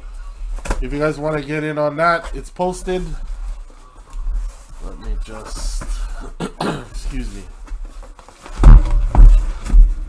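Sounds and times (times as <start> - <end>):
heavy thumps of cardboard case: 8.5 - 10.0.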